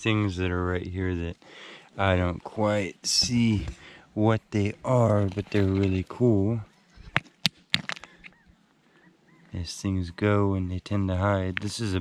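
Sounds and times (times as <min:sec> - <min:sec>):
stones clacking together: 0:07.0 - 0:08.4, 0:11.5 - 0:12.0
faint bird chirps: 0:08.2 - 0:10.3.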